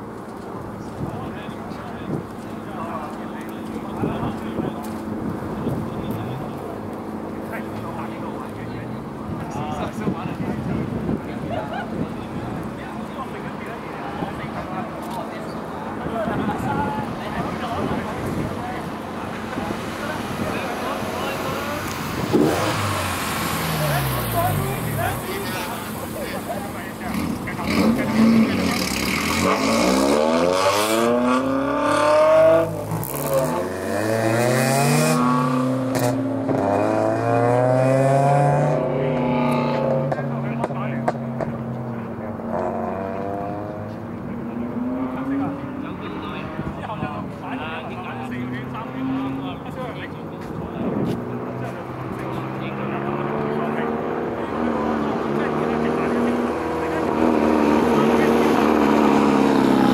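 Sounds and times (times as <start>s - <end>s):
race cars passing and accelerating: 0.0s - 59.9s.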